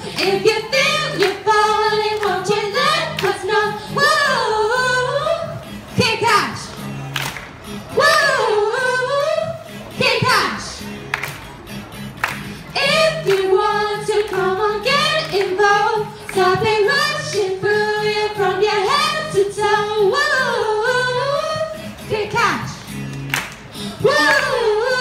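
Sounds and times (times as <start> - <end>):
woman singing pop melody: 0.0 - 6.7, 7.9 - 10.8, 12.8 - 22.9, 23.9 - 25.0.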